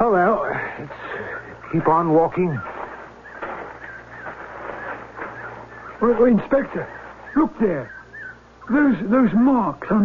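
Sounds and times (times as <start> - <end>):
low steady hum: 0.0 - 10.0
faint bird chirps: 0.8 - 9.5.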